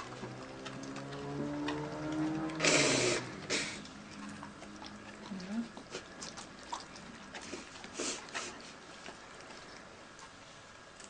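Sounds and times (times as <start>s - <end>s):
wet licking clicks: 0.0s - 11.0s.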